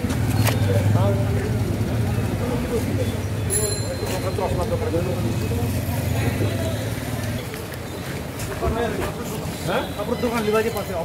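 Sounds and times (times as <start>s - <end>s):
indistinct voices talking: 0.0s - 11.0s
street noise hum: 0.0s - 11.0s.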